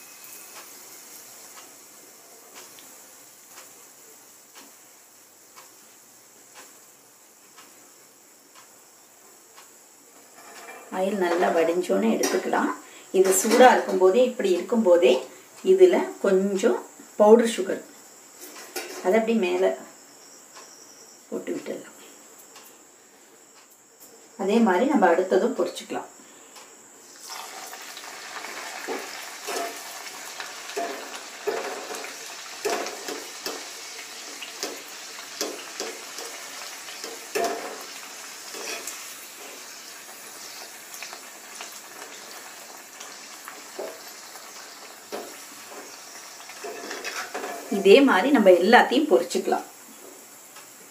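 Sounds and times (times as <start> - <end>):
hot oil sizzling: 0.0 - 20.4, 27.0 - 50.9.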